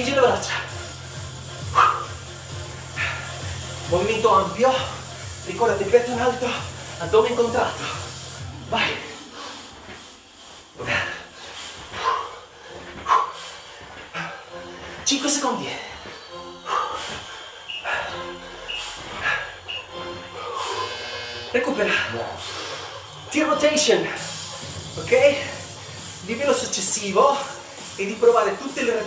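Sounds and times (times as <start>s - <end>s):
quiet background music: 0.0s - 29.0s.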